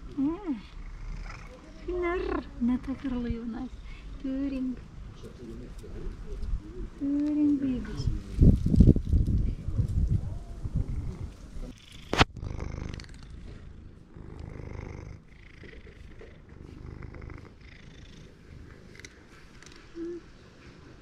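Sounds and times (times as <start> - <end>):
cat purring: 0.0 - 21.0.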